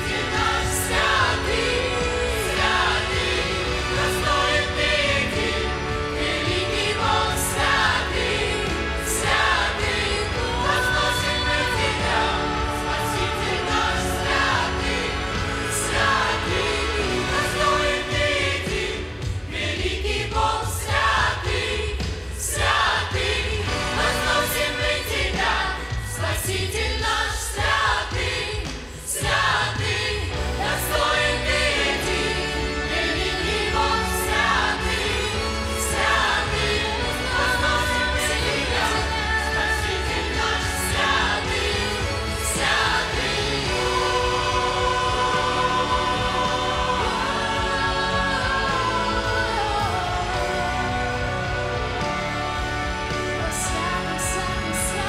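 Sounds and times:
instrumental backing with bass: 0.0 - 26.6, 29.2 - 55.0
church choir singing: 0.0 - 55.0.

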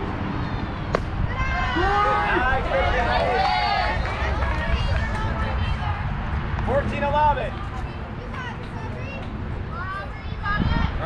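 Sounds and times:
wind rumble on microphone: 0.0 - 11.0
high voices shouting and cheering: 0.4 - 6.4
sharp crack: 0.8 - 1.2.

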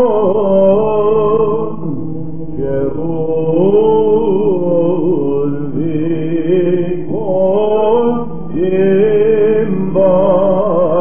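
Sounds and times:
held vocal drone: 0.0 - 11.0.

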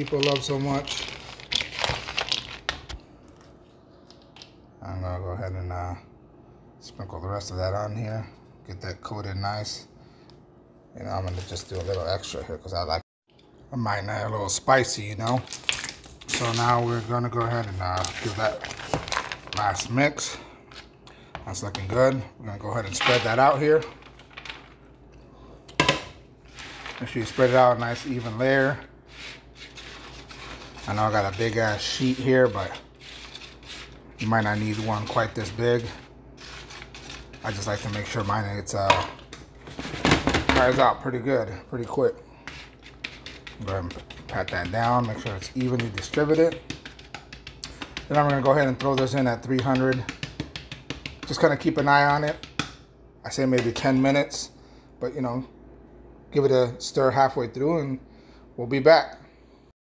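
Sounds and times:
peanuts scraping over baking sheet: 16.3 - 20.4, 26.4 - 38.8, 41.8 - 46.6.

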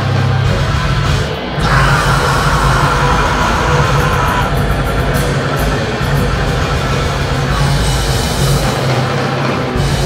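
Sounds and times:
heavy metal band playing live: 0.0 - 10.0.

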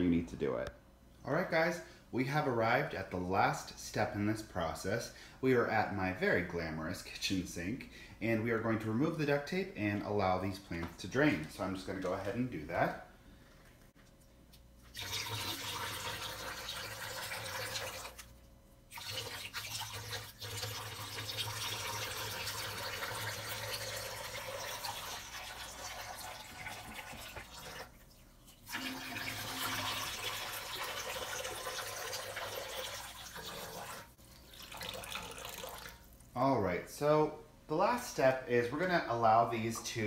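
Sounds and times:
water splashing into metal sink: 14.9 - 18.2, 18.9 - 28.0.

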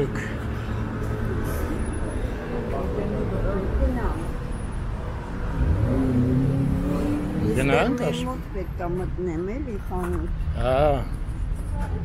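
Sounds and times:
street traffic: 0.0 - 12.0
car engine accelerating: 5.4 - 8.3
man speaking: 7.4 - 8.2, 10.6 - 11.1.

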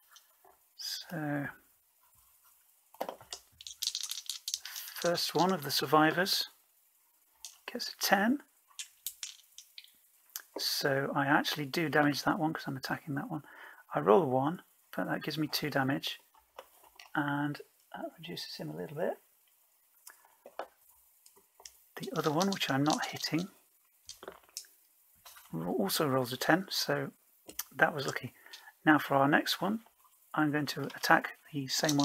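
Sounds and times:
person speaking: 0.8 - 1.6, 3.8 - 6.6, 7.5 - 8.5, 17.0 - 19.2, 22.0 - 24.6, 25.3 - 32.0
dice rattling in a tray: 3.0 - 5.7, 8.8 - 10.0, 21.6 - 23.5, 24.1 - 24.7, 31.7 - 32.0.

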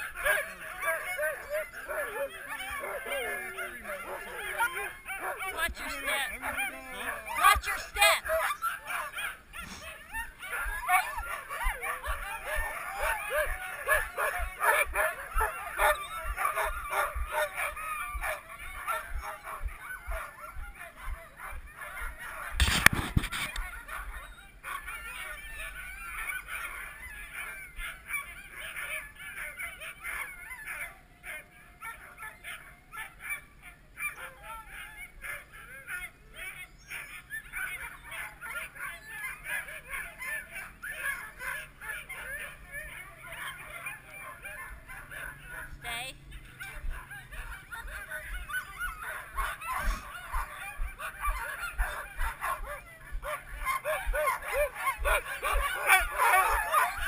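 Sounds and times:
dogs yelping and barking: 0.0 - 57.0.

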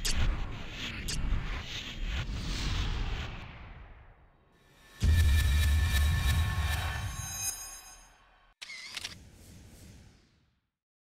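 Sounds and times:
logo animation music: 1.3 - 8.6.

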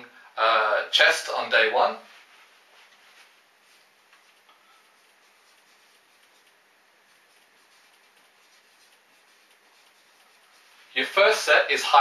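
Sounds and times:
marker writing on whiteboard: 3.6 - 11.0.

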